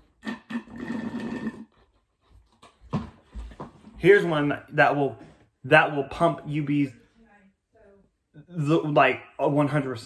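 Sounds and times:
slurping through a straw: 0.0s - 2.0s.

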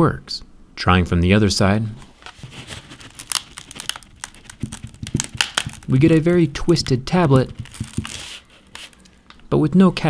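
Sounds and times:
tablet crackling and creaking: 2.1s - 9.4s.

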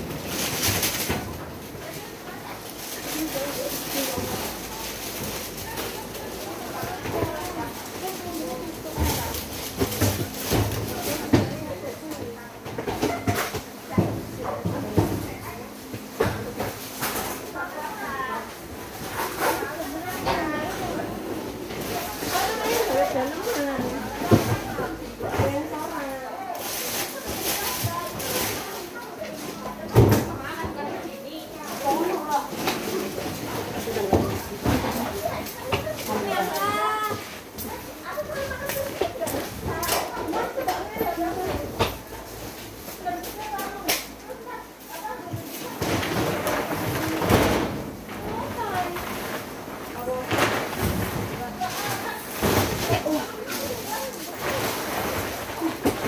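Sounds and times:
suitcases being handled: 0.0s - 43.8s, 44.4s - 56.0s
chatter of voices: 0.0s - 56.0s
rustling of goods: 0.0s - 56.0s.

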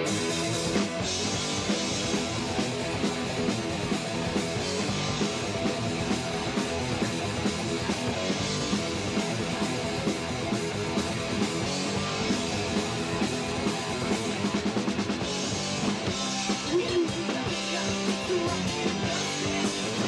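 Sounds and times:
punk rock band playing: 0.0s - 20.0s.

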